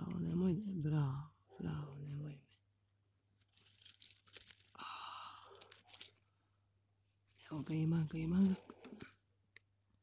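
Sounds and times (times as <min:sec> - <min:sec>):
rustling on dry leaves: 0:03.4 - 0:04.7.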